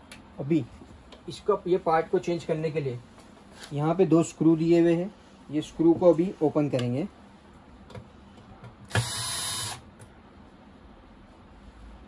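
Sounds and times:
cordless drill motor whine: 8.9s - 9.8s.

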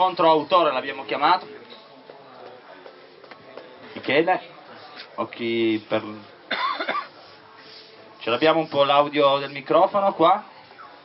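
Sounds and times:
man coughing: 6.5s - 7.1s.

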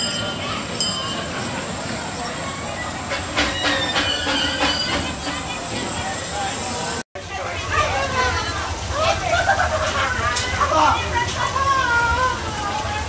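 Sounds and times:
wheels squealing on rails: 0.0s - 7.0s
crowd chatter: 0.0s - 13.0s
steam locomotive rolling: 0.0s - 13.0s
wheel clatter: 2.9s - 6.4s.

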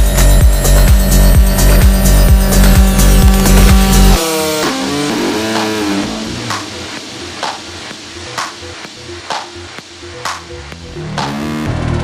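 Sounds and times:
sparse electronic pattern: 0.0s - 11.8s
sharp percussive hit: 0.8s - 11.4s.

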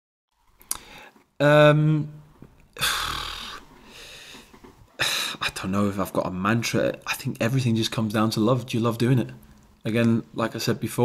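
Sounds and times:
man sighing: 2.8s - 5.4s.

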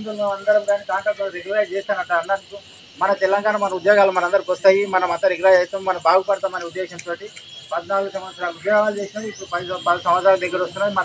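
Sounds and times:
man speaking to crowd: 0.0s - 11.0s.

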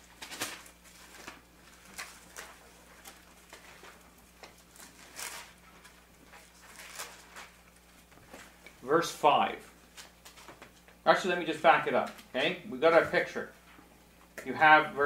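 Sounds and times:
paper pages rustling: 0.0s - 8.8s, 9.8s - 11.0s
faint electrical hum: 0.0s - 15.0s.

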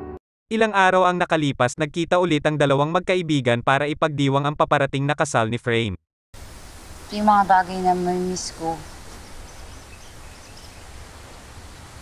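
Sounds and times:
outdoor background hiss: 6.4s - 12.0s.

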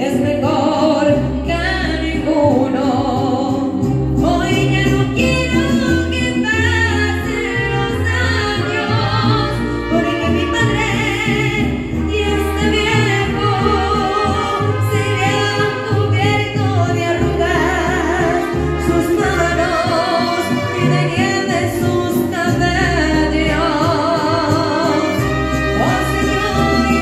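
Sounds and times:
woman singing with vibrato: 0.0s - 27.0s
instrumental accompaniment: 0.3s - 27.0s.

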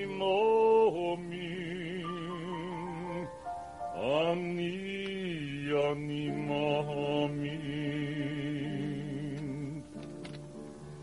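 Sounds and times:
tenor voice singing: 0.0s - 3.4s, 4.0s - 10.0s.

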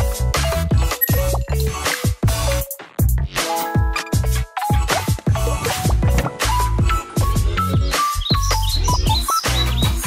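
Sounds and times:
upbeat bass-heavy music: 0.0s - 10.0s
bird chirp sound effects: 1.0s - 1.6s, 7.8s - 10.0s.

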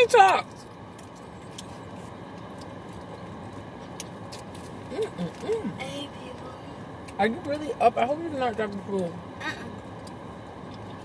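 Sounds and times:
car engine hum inside cabin: 0.0s - 11.0s.

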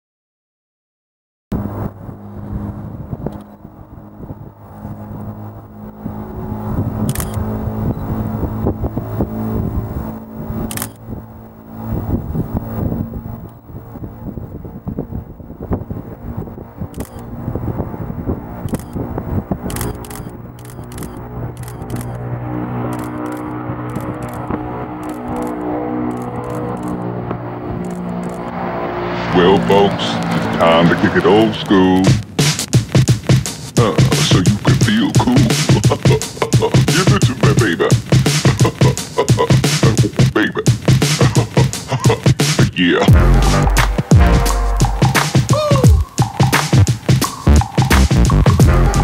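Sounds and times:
wind buffeting microphone: 1.5s - 28.6s
turboprop engines droning: 1.5s - 49.0s.

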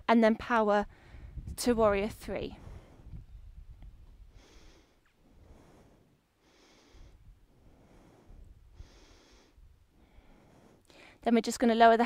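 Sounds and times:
woman breathing: 0.9s - 1.4s, 2.5s - 3.2s, 4.2s - 11.2s.

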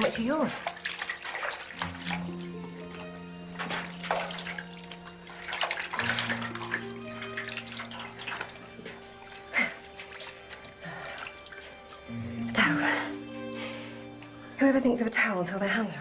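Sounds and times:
hands splashing in water: 0.0s - 13.8s
soft music with held chords: 0.0s - 16.0s.

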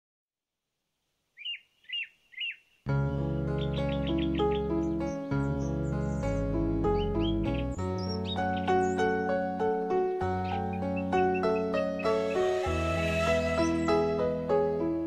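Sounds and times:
bird chirps: 1.4s - 9.4s, 10.4s - 14.2s
gentle music of sustained chords: 2.9s - 15.0s.

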